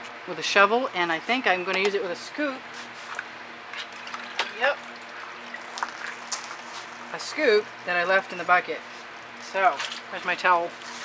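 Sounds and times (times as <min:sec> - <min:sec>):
faint steady hum: 0:00.0 - 0:11.0
woman speaking: 0:00.3 - 0:02.6, 0:07.1 - 0:08.8, 0:09.4 - 0:10.8.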